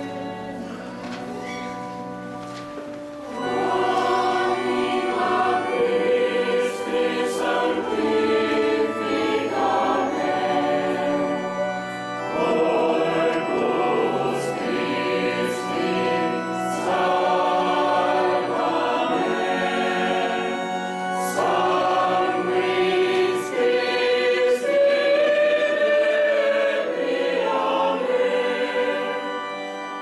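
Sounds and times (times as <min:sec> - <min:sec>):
church choir singing: 0:00.0 - 0:30.0.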